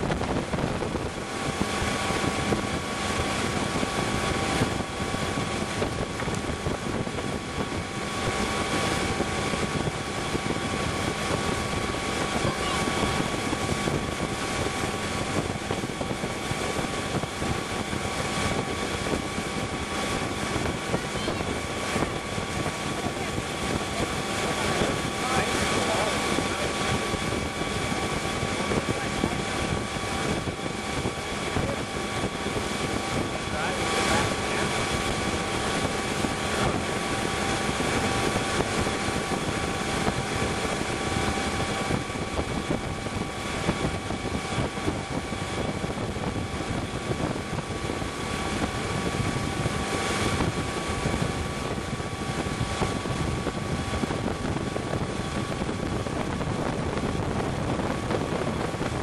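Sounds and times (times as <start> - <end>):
boat engine running with whine: 0.0 - 59.0
churning wake water: 0.0 - 59.0
wind rushing: 0.0 - 59.0.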